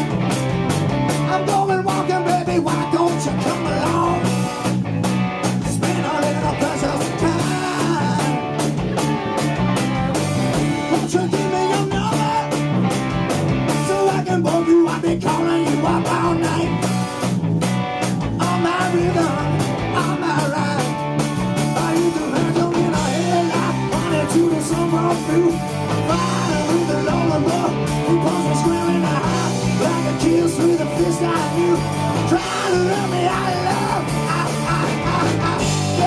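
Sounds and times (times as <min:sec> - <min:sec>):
bass guitar: 0:00.0 - 0:36.0
electric guitars: 0:00.0 - 0:36.0
steady drumbeat: 0:00.0 - 0:36.0.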